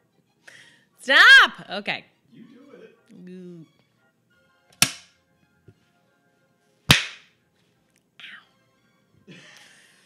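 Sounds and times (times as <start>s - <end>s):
hands smacking: 4.7s - 5.1s, 6.9s - 7.4s.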